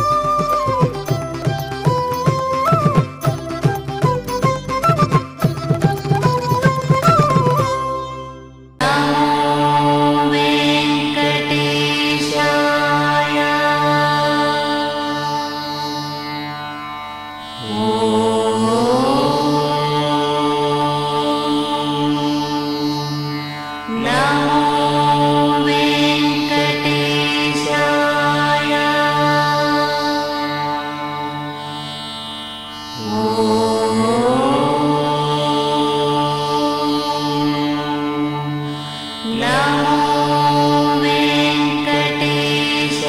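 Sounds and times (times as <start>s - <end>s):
instrumental drone: 7.8s - 43.0s
person chanting a held note: 17.6s - 23.0s, 23.9s - 31.7s, 33.0s - 43.0s
steady drone: 33.0s - 43.0s.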